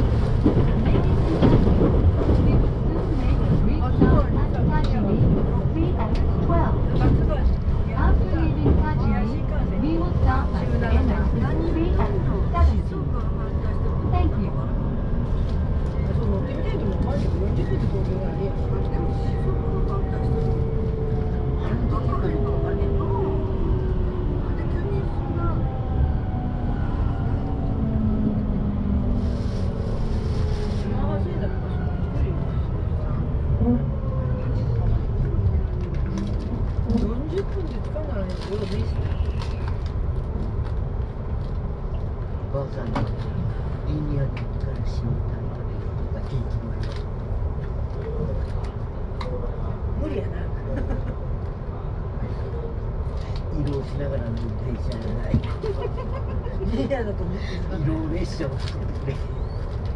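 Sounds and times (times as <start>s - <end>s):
train low rumble: 0.0s - 59.9s.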